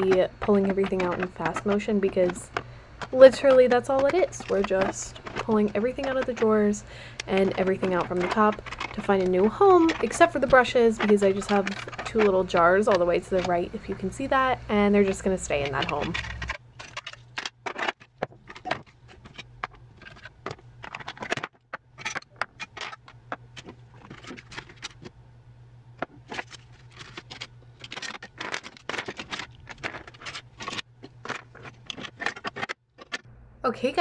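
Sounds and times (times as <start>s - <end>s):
plastic containers clattering on desk: 0.1s - 14.2s, 15.0s - 25.1s, 26.0s - 33.3s.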